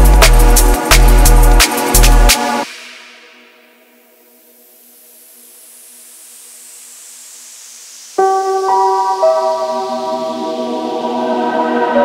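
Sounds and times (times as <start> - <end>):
white-noise riser: 0.2 - 12.0.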